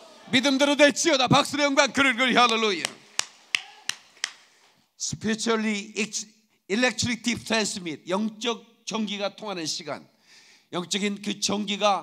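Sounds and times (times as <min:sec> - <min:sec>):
man clapping hands: 0:02.4 - 0:04.5.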